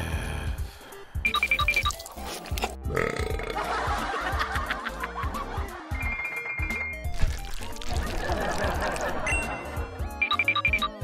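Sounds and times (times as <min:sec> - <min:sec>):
cartoon burp: 0:02.8 - 0:03.7
background music with beat: 0:03.4 - 0:11.0.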